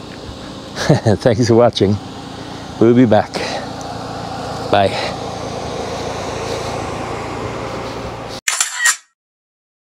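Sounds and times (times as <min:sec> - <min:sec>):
outdoor background noise: 0:00.0 - 0:09.1
camera shutter click: 0:08.5 - 0:09.1.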